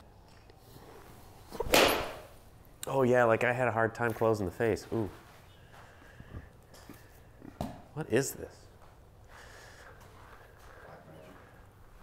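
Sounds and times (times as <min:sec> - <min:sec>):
golf club striking ball: 0:01.6 - 0:02.4.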